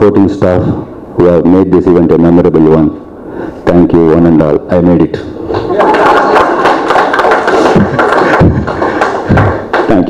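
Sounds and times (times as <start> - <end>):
audience applauding: 5.6 - 10.0.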